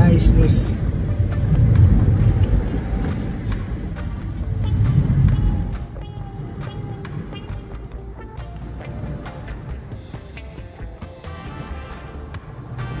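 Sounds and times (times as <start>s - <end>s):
road and engine rumble in car: 0.0s - 10.0s
faint music: 0.0s - 13.0s.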